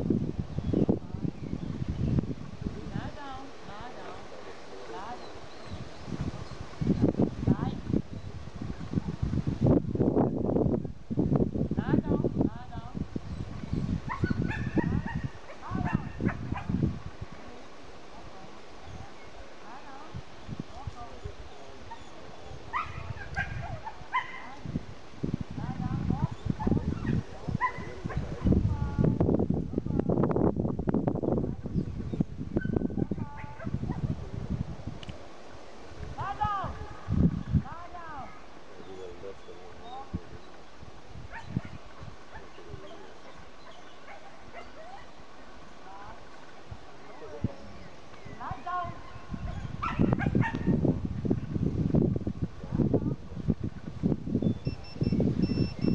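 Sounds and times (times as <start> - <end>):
low rumbling microphone noise: 0.0 - 55.9
dog yipping and barking: 14.1 - 16.7, 22.7 - 24.6, 26.6 - 28.2, 43.6 - 45.2, 48.9 - 50.7.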